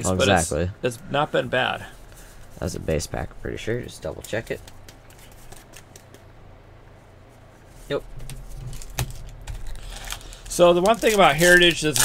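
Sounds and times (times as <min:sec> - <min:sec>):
trading cards clicking and rustling: 0:03.8 - 0:06.3, 0:08.1 - 0:12.0.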